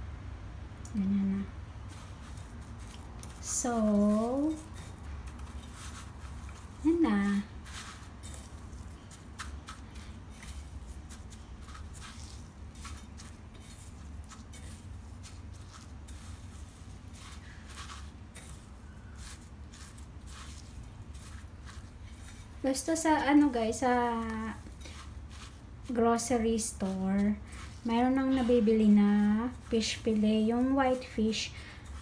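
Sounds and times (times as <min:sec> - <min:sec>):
low steady hum: 0:00.0 - 0:32.0
breadcrumbs rustling and crunching: 0:01.7 - 0:32.0.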